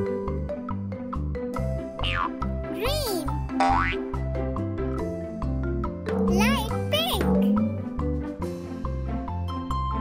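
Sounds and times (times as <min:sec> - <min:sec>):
bouncy children's music: 0:00.0 - 0:10.0
cartoon boing: 0:02.0 - 0:02.4, 0:03.6 - 0:04.0.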